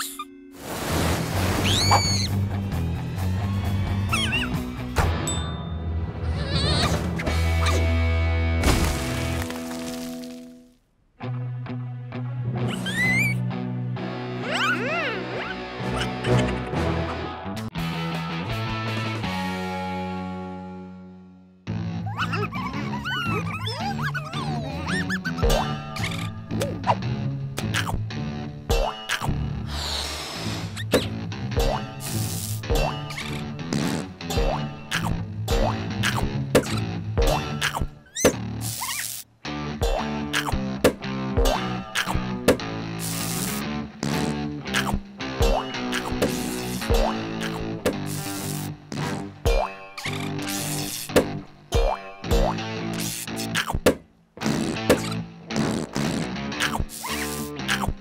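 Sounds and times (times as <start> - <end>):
cartoon creatures chirping and squeaking: 0.0 - 0.3, 1.6 - 2.4, 4.1 - 4.6, 12.7 - 13.4, 14.4 - 16.2, 22.0 - 26.8, 37.6 - 39.3, 40.3 - 40.6, 45.6 - 48.7, 50.0 - 51.1, 56.6 - 58.0
cartoon music: 0.0 - 0.4, 1.6 - 2.4, 4.1 - 4.6, 12.7 - 13.4, 14.4 - 17.3, 22.0 - 27.0
background music with bass line: 1.7 - 5.2, 11.2 - 29.7, 39.5 - 58.0.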